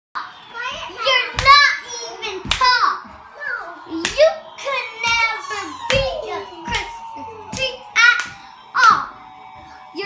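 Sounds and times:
sharp clap or stomp: 2.4 - 2.8, 3.9 - 5.3, 5.9 - 9.1.

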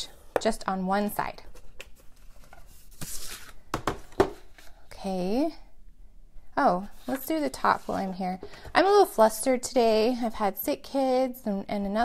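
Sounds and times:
taps and knocks of paper and board: 3.7 - 4.4.

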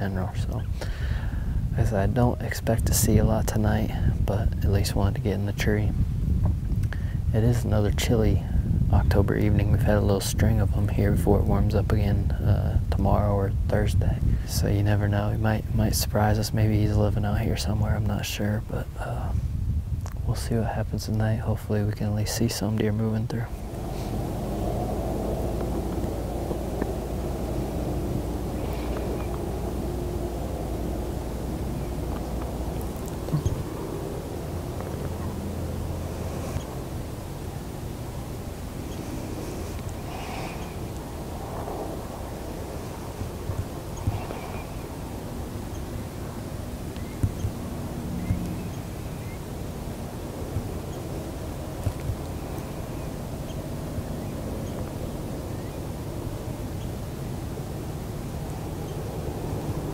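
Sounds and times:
low rumble with faint hum: 0.0 - 59.9.

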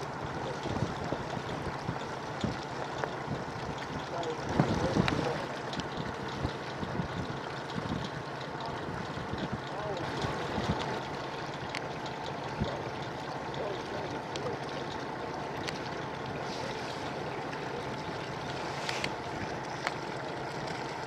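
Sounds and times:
water washing against boat hull: 0.0 - 21.0
wind buffeting microphone: 0.2 - 11.0.

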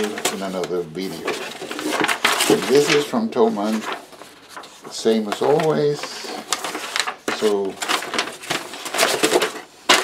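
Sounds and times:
paper rustling and crinkling: 0.0 - 10.0.

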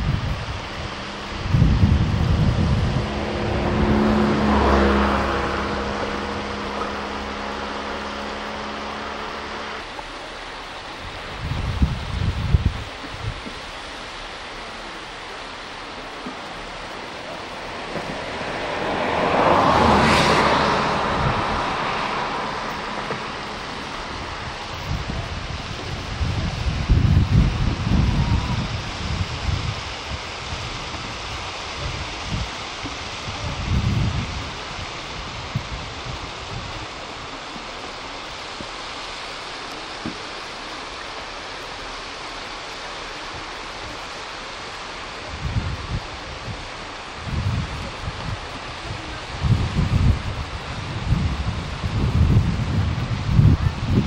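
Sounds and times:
steady hiss: 0.0 - 20.0, 20.8 - 54.0
wind buffeting microphone: 0.0 - 38.8, 43.2 - 54.0.

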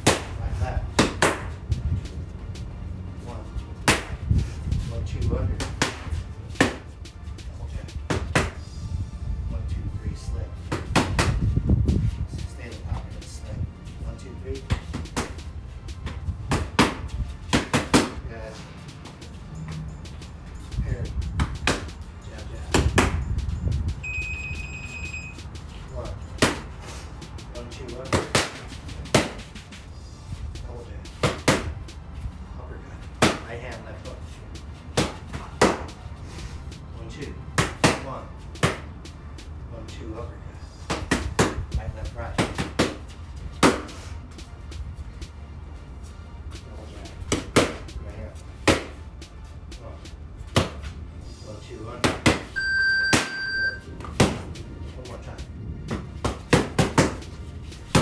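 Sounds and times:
gloves punching focus mitts: 0.0 - 1.6, 10.7 - 11.5, 16.0 - 18.2, 31.1 - 31.9, 33.2 - 33.5, 34.9 - 36.0, 40.8 - 41.7, 42.3 - 44.0, 47.3 - 48.0, 48.6 - 49.0, 50.5 - 50.9, 55.8 - 58.0
electronic beep: 24.0 - 25.4, 52.6 - 53.9.

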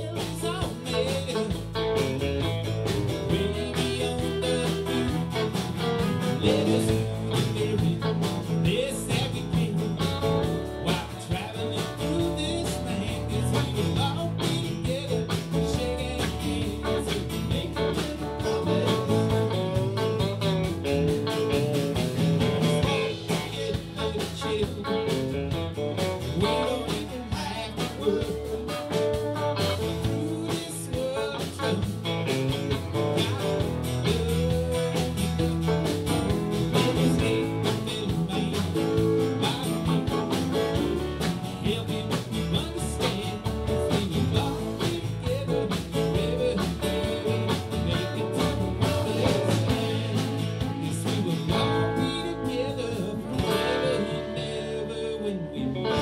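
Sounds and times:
drum kit: 0.0 - 55.2, 55.8 - 56.0
acoustic guitar: 0.0 - 56.0
bass guitar: 0.0 - 56.0
electric guitar: 0.0 - 56.0.

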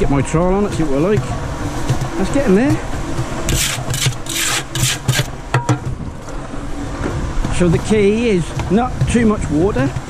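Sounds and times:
cement mixer rumbling: 0.0 - 10.0
sharp trowel click: 3.5 - 5.3
trowel scraping through mortar: 3.5 - 5.3.

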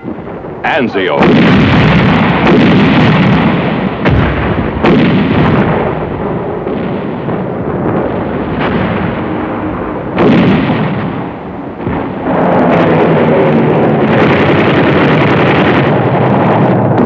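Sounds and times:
artillery explosions: 0.0 - 17.0
gunfire: 0.0 - 17.0.

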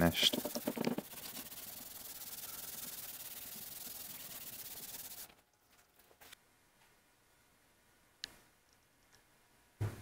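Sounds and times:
cloth scrubbing wood: 0.0 - 5.3.

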